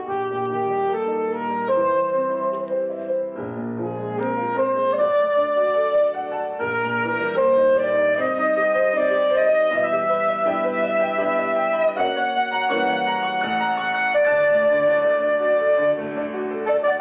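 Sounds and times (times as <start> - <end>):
soprano saxophone sustained notes: 0.0 - 2.8, 3.9 - 17.0
grand piano chords: 0.0 - 17.0.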